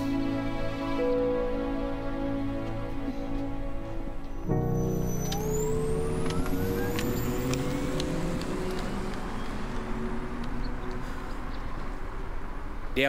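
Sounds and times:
road noise rushing: 0.0s - 13.0s
car engine accelerating: 4.1s - 13.0s.

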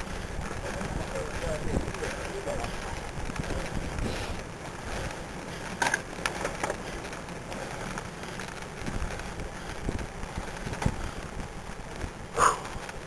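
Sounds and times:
wind and road noise: 0.0s - 13.0s.

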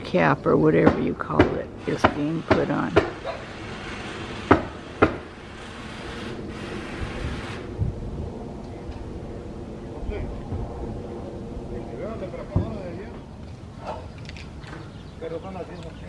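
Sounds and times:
low mechanical drone: 0.0s - 16.0s
nail gun shots on roof: 0.8s - 3.4s, 4.4s - 5.3s.

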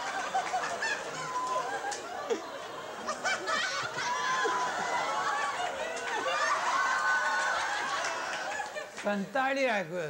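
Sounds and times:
soft chuckles: 0.5s - 3.9s.

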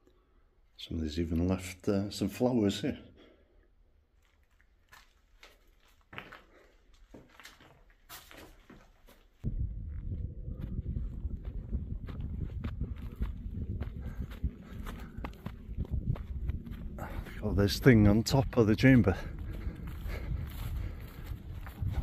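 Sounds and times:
footsteps in grass: 4.2s - 9.4s, 18.5s - 22.0s
footsteps and scuffs: 4.2s - 9.5s, 11.4s - 17.4s, 18.8s - 22.0s
wind buffeting microphone: 9.4s - 22.0s.

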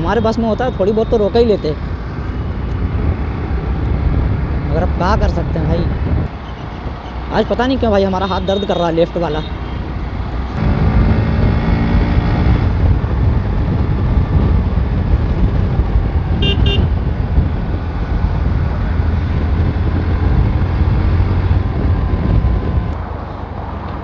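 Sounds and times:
wind rumble on microphone: 0.0s - 7.0s, 10.0s - 24.0s
motorcycle engine: 9.6s - 23.0s
horn beep: 16.4s - 16.9s.

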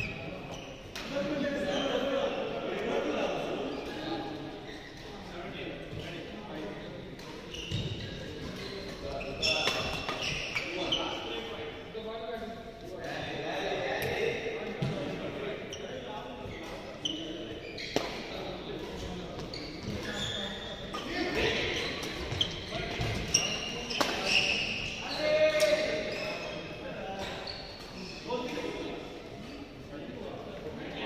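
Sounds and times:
sneaker squeaks: 0.0s - 2.3s, 3.7s - 5.3s, 7.2s - 11.6s, 14.8s - 29.8s.

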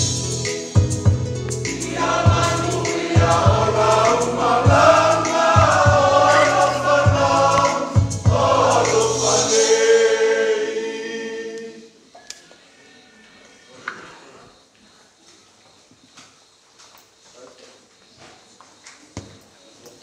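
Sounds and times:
low accompaniment: 0.0s - 9.6s
congregation singing a hymn: 1.6s - 12.0s.

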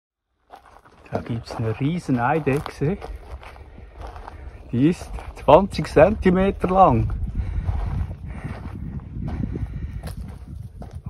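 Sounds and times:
wind buffeting microphone: 1.0s - 11.0s.

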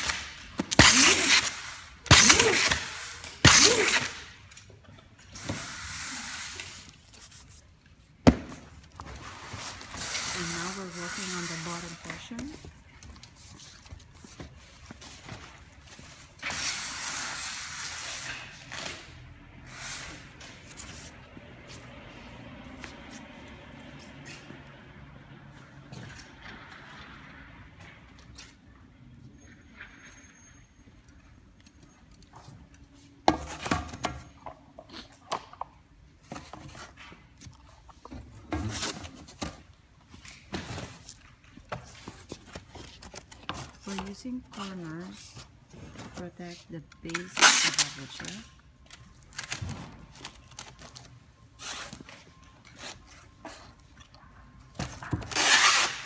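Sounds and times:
cardboard box and plastic rustling: 36.1s - 53.8s.

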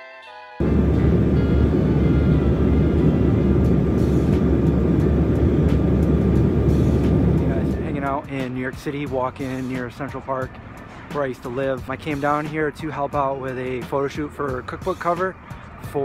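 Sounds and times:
music: 0.0s - 16.0s
airliner cabin rumble: 0.6s - 8.5s.

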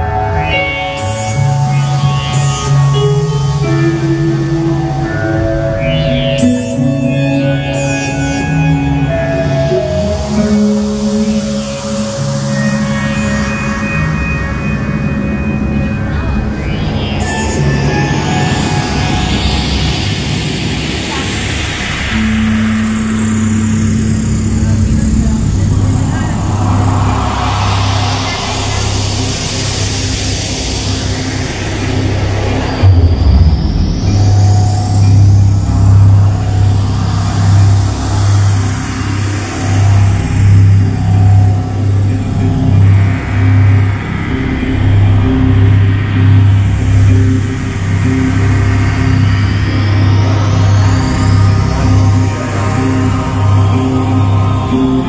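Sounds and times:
low synthesizer drone: 0.0s - 55.0s
synthesizer swooshes: 0.0s - 55.0s
pulsing deep bass note: 11.3s - 55.0s.

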